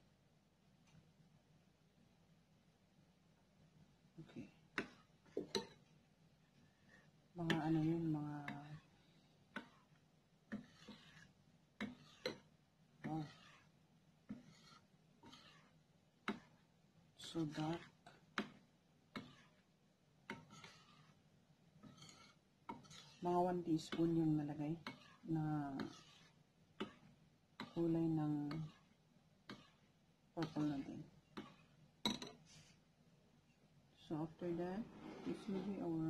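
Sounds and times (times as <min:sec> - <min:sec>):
metal spoon stirring batter: 0:04.2 - 0:32.9.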